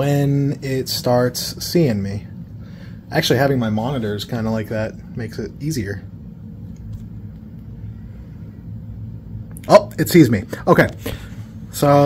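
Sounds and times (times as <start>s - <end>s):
low background rumble and hum: 0.0s - 12.0s.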